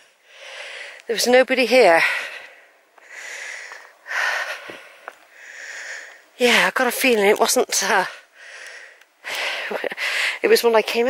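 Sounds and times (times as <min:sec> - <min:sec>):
person breathing hard: 0:00.0 - 0:01.0, 0:02.0 - 0:06.3, 0:08.2 - 0:10.4
faint clicks: 0:08.6 - 0:09.5.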